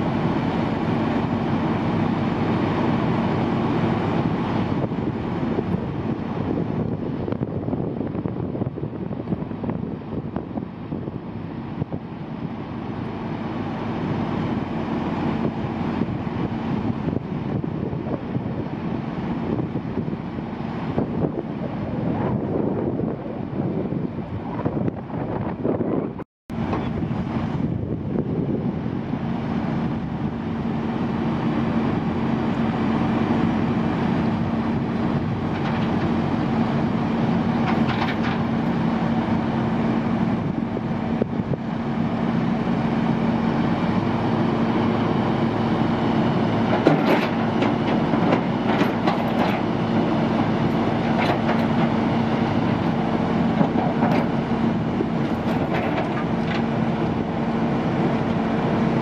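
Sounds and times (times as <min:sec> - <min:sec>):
higher engine tone: 0:00.0 - 0:48.8
diesel engine running: 0:00.0 - 0:59.0.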